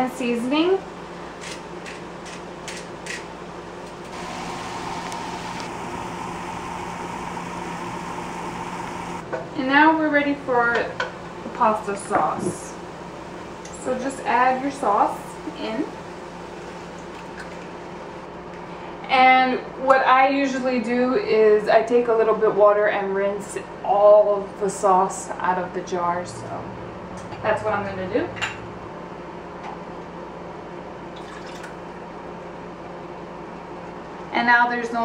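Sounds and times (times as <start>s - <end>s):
room noise hum and hiss: 0.0s - 35.0s
water pouring into a pot: 31.2s - 31.7s.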